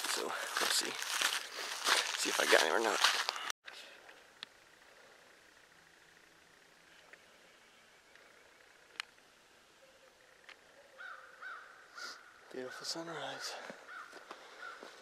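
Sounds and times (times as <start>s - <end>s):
man's voice: 0.0s - 1.1s, 2.0s - 3.5s
faint woodland ambience: 0.0s - 15.0s.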